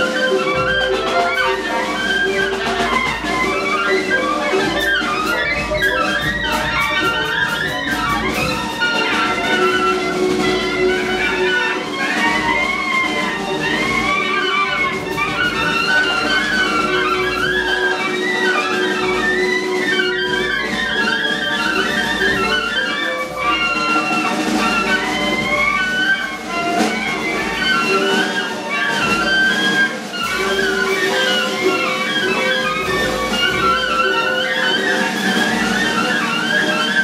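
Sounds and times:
clarinets and saxophones improvising: 0.0s - 37.0s.

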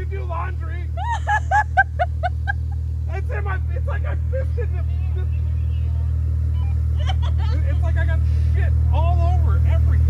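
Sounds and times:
engine idling hum: 0.0s - 10.0s
high-pitched laughter: 1.0s - 2.9s, 6.6s - 7.6s.

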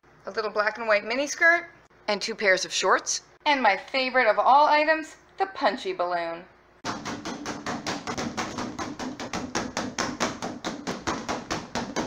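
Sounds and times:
punch balloon rubbery smacks: 6.8s - 12.0s.

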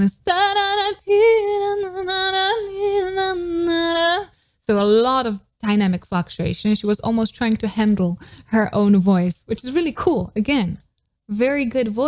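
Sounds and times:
young woman singing: 0.0s - 4.4s.

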